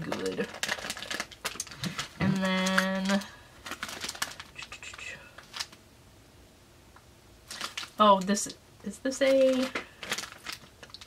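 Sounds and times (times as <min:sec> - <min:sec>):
packaging clicks and rustles: 0:00.0 - 0:04.8, 0:05.4 - 0:05.8, 0:07.5 - 0:08.3, 0:09.2 - 0:11.0.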